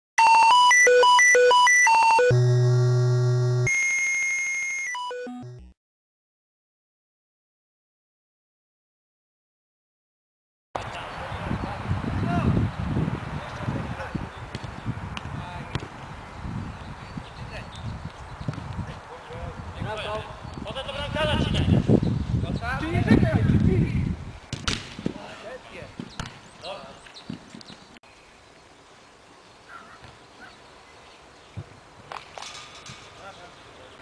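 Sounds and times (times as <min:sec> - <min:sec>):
electronic beep jingle: 0:00.2 - 0:05.8
long high-pitched tone: 0:00.2 - 0:05.8
long low buzzing tone: 0:02.3 - 0:03.8.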